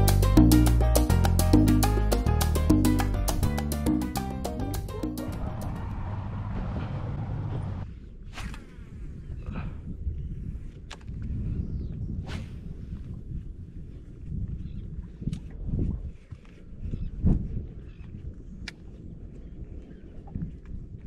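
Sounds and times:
wind buffeting microphone: 0:05.2 - 0:21.0.

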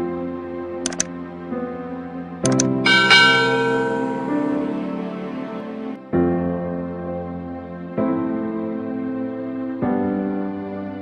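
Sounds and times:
soft background music: 0:00.0 - 0:11.0
bell ringing: 0:02.5 - 0:05.4.

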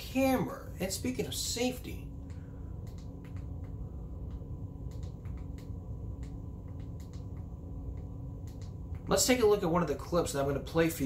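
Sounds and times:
faint high whine: 0:00.0 - 0:11.0
steady low hum: 0:00.0 - 0:11.0.

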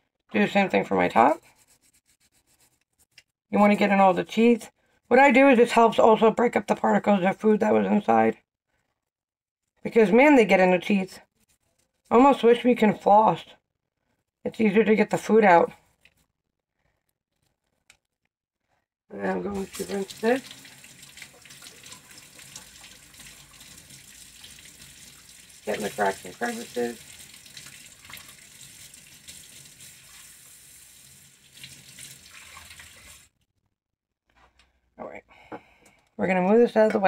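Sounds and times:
faucet running into metal sink: 0:19.6 - 0:33.3.

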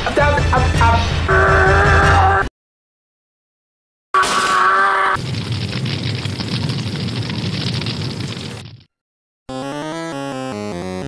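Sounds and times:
explosion rumble: 0:05.2 - 0:08.9.

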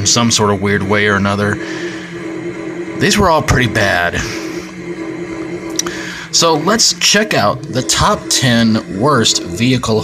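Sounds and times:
man speaking: 0:00.0 - 0:02.1, 0:02.9 - 0:04.7, 0:05.8 - 0:10.0
background hum with held tones: 0:00.0 - 0:10.0.

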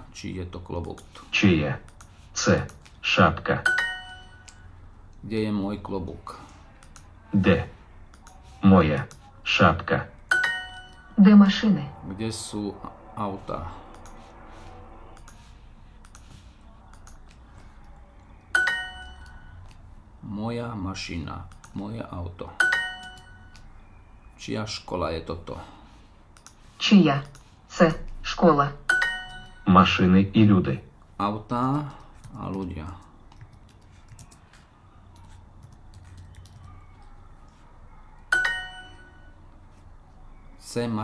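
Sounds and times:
two-note ding chime: 0:03.6 - 0:04.5, 0:10.3 - 0:11.2, 0:18.5 - 0:19.4, 0:22.6 - 0:23.5, 0:28.9 - 0:29.7, 0:38.3 - 0:39.3.

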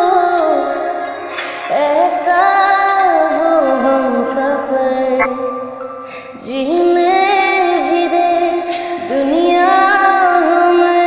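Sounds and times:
woman singing slow melody: 0:00.0 - 0:11.0.

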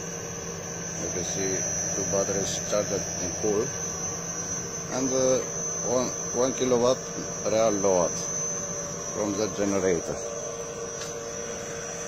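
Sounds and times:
high-pitched motor whine: 0:00.0 - 0:12.0
low electrical hum: 0:00.0 - 0:12.0.

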